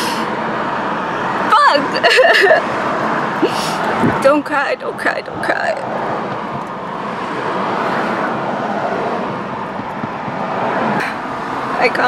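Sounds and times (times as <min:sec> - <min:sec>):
road noise inside car: 0:00.0 - 0:12.0.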